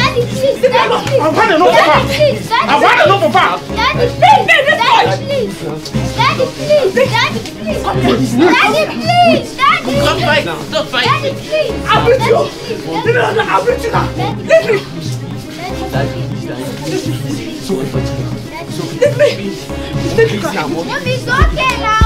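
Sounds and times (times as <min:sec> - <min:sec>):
voices shouting: 0:00.0 - 0:15.1
background music with bass: 0:00.0 - 0:22.0.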